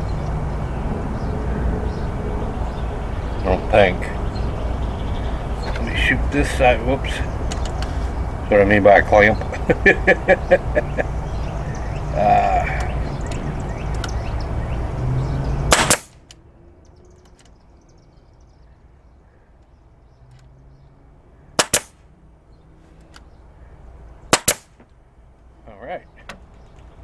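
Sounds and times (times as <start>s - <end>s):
nail gun firing: 15.7s - 16.2s, 21.6s - 22.0s, 24.3s - 24.8s.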